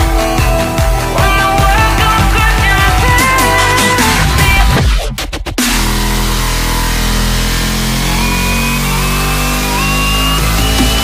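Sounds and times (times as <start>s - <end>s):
cartoon helicopter rotor motor: 5.6s - 11.0s
thin whining tones rising: 6.1s - 11.0s.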